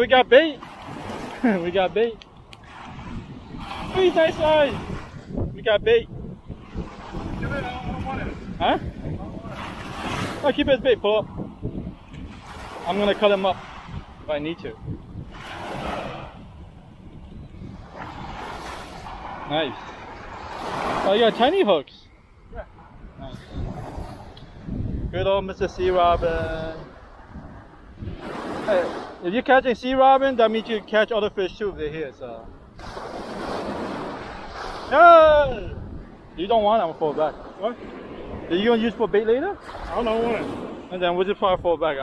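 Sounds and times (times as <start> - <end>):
surf washing onto beach: 0.0 - 21.9, 22.9 - 31.6, 32.6 - 42.0
wind on microphone: 0.0 - 42.0.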